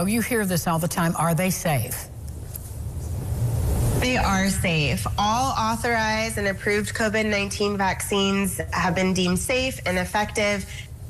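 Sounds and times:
low rumble: 2.1s - 7.9s.

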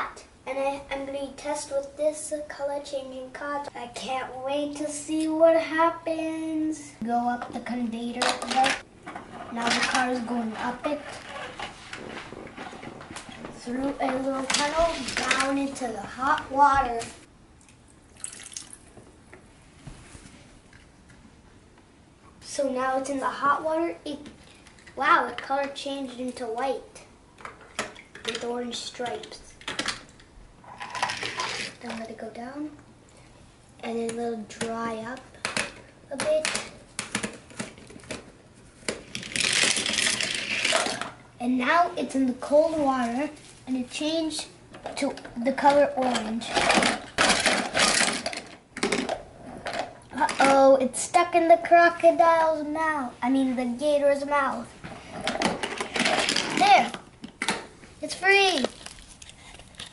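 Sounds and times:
toy conveyor belt lifting car: 30.7s - 31.8s.

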